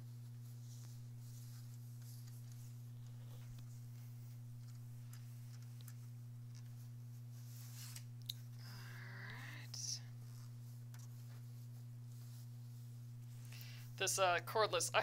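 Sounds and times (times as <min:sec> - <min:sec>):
fabric rustling: 0:00.0 - 0:08.6, 0:10.0 - 0:14.7
steady low hum: 0:00.0 - 0:15.0.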